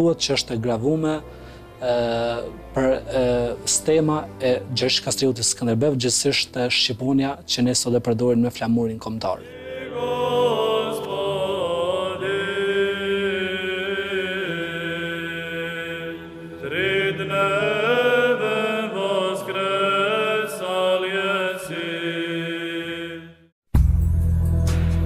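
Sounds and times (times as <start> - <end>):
voices chanting: 9.4 - 23.3.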